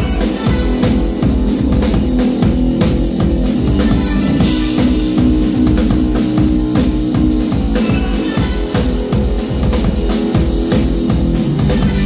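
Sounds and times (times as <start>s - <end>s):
electronic keyboards: 0.0s - 12.0s
rapid drum kit strokes: 0.0s - 12.0s
held low bass line: 1.2s - 8.2s.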